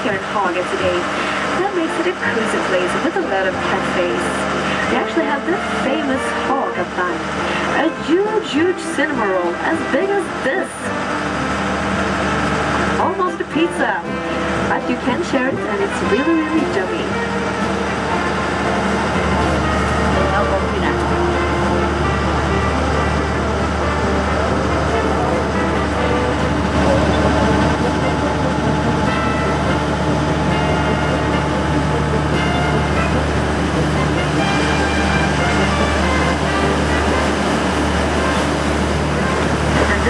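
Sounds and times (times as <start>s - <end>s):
people's voices: 0.0s - 10.9s, 13.0s - 17.2s, 20.0s - 21.6s, 39.7s - 40.0s
boat engine drone: 0.0s - 40.0s.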